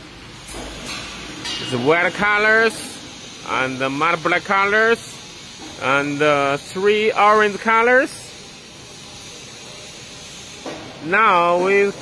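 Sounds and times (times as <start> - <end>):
compressed air hissing: 0.2 - 12.0.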